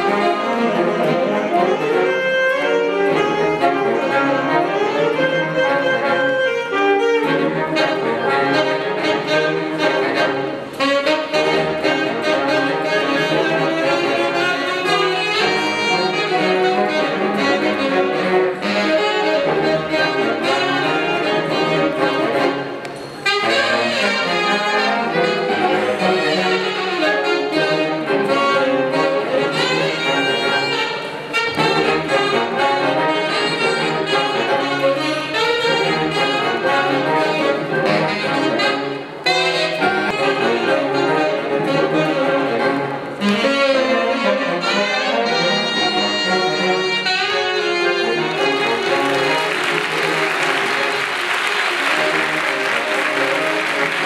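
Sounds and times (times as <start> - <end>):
saxophones trumpets and trombone playing: 0.0 - 54.0.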